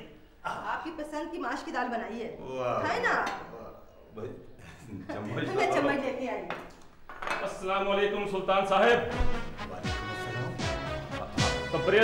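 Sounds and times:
crockery clinking on glass table: 6.5s - 7.5s.

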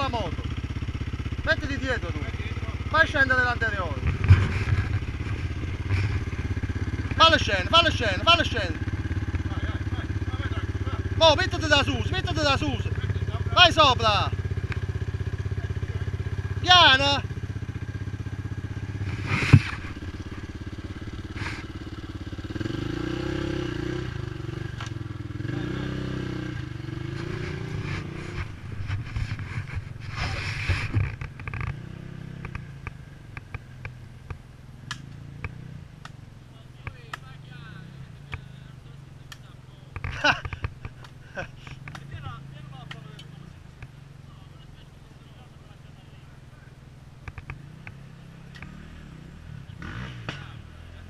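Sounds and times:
dirt bike engine revving: 0.0s - 33.9s, 36.8s - 44.8s, 47.2s - 51.0s.

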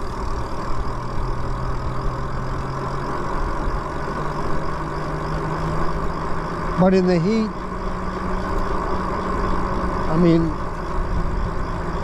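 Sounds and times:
faint electric motor hum: 0.0s - 12.0s.

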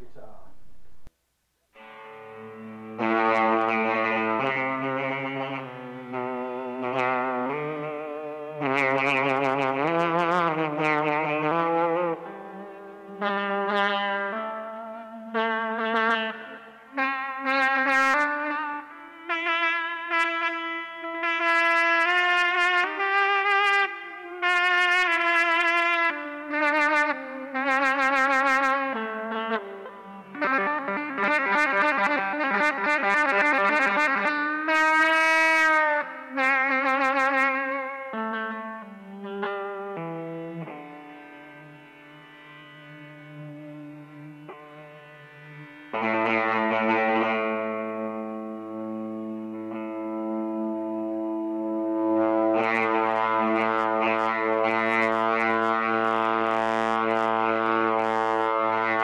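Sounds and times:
electric guitar horn-like notes: 1.7s - 59.0s.

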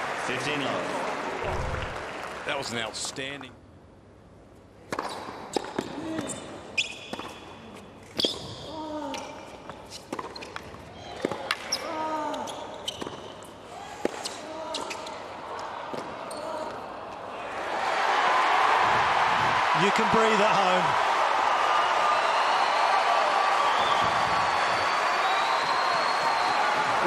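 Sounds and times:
crowd cheering and applauding: 0.0s - 3.0s, 17.5s - 27.0s.

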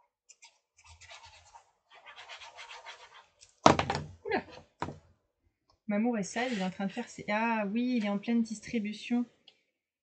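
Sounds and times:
glue stick scrubbing on paper: 0.4s - 3.5s
sharp thuds on desk: 3.6s - 4.1s.

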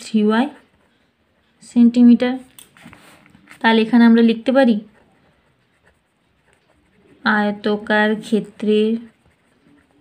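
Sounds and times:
pen writing on paper: 0.0s - 2.1s, 2.7s - 10.0s.

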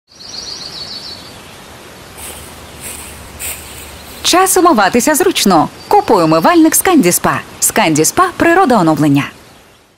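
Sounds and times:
steady outdoor hiss: 0.1s - 9.9s.

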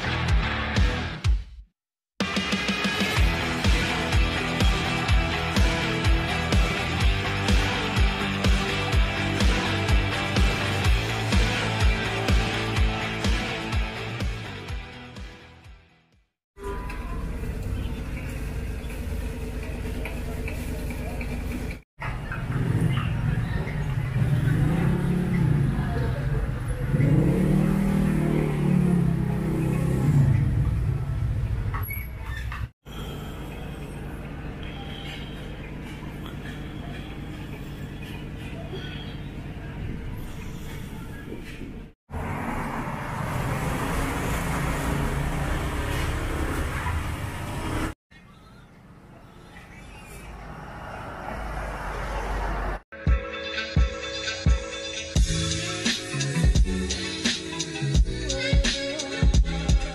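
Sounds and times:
vehicle engine: 17.1s - 48.0s, 49.7s - 52.8s
tyre noise on road: 34.2s - 48.0s, 50.2s - 52.8s.

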